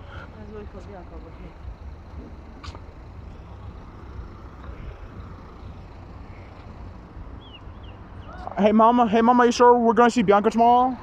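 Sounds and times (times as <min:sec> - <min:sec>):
low rumble of street noise: 0:00.0 - 0:11.0.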